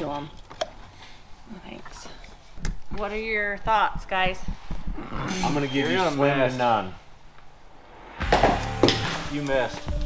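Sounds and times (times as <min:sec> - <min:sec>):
music: 0:08.0 - 0:10.0.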